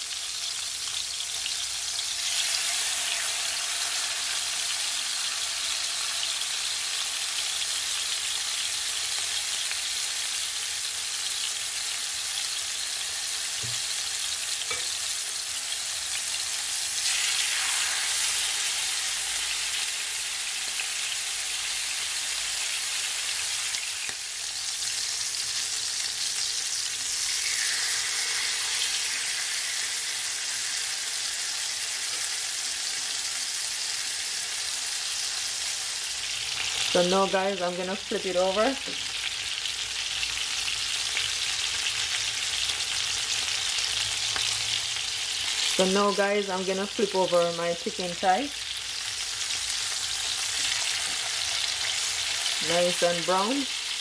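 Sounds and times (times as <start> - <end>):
chicken sizzling in a frying pan: 0.0 - 54.0.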